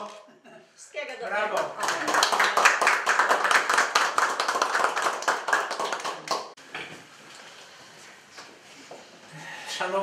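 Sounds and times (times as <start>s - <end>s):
people clapping: 1.4s - 6.6s.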